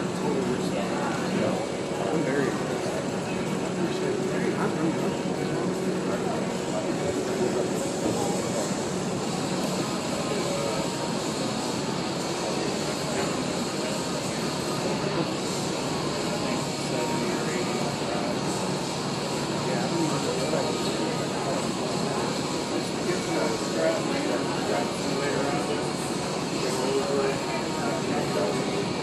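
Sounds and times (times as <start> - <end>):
steady mechanical drone: 0.0 - 29.0.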